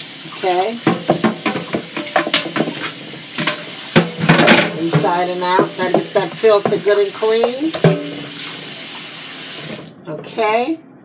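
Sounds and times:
faucet water splashing into bowl: 0.0 - 9.9
brush scrubbing bowl: 0.3 - 9.0
knocks of bowl being handled: 0.9 - 8.4.

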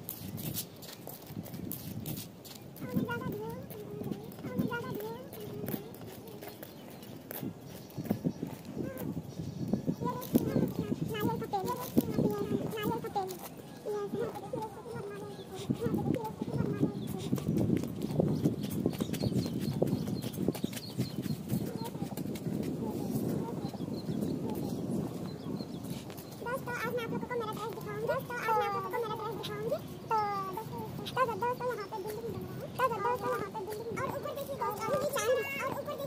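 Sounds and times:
light taps and scuffs: 0.0 - 9.2, 15.4 - 26.5
young girl's voice: 1.9 - 36.0.

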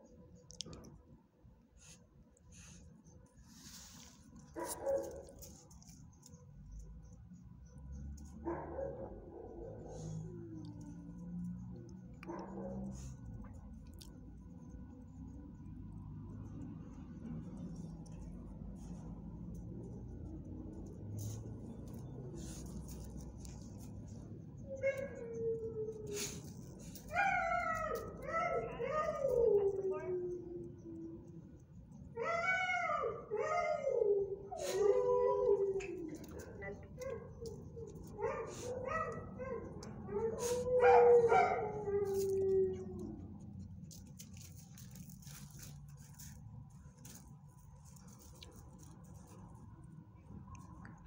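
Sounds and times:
dog barking: 4.6 - 5.4.

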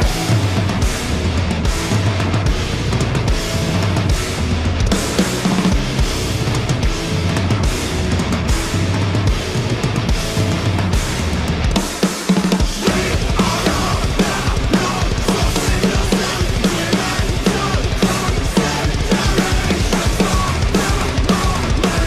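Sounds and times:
dense drumming: 0.0 - 22.0
heavy metal band playing: 0.0 - 22.0.

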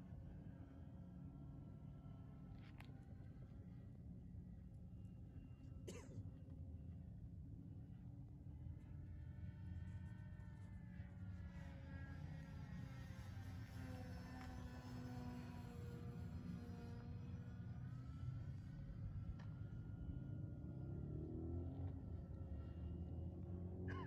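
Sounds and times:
model plane motor whine: 7.8 - 23.9.

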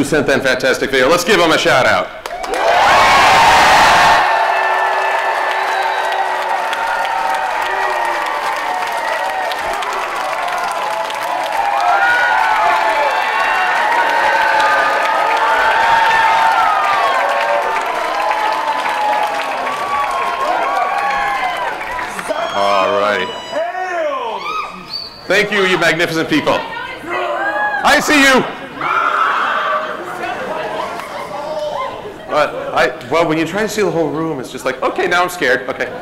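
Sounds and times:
audience applause: 2.2 - 23.2
crowd whooping and yelling: 2.4 - 25.1, 26.7 - 32.1.

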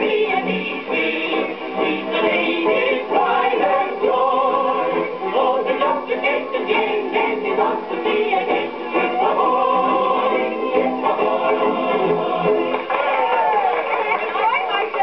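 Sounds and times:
old record music-hall singing: 0.0 - 15.0.

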